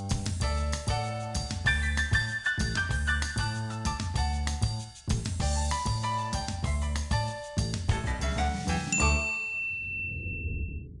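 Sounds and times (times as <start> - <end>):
theme music: 5.4 - 9.3
bell-like ding over low chord: 8.9 - 10.5.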